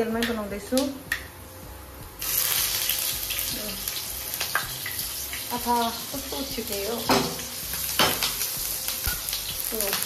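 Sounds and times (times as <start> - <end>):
onions sizzling in hot oil: 2.2 - 10.0.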